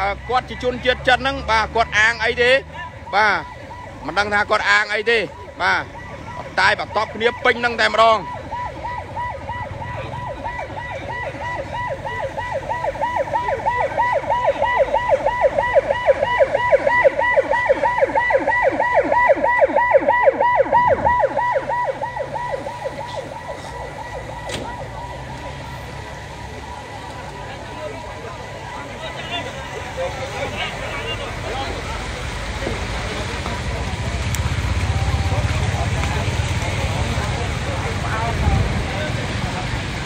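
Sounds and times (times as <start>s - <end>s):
emergency siren yelping: 0.0s - 39.8s.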